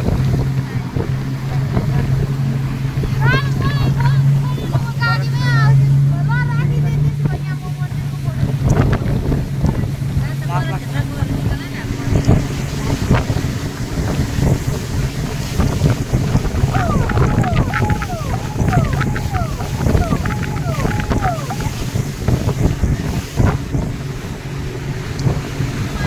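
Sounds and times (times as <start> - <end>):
motorboat engine humming: 0.0 - 26.0
water rushing: 0.0 - 26.0
wind buffeting microphone: 0.0 - 26.0.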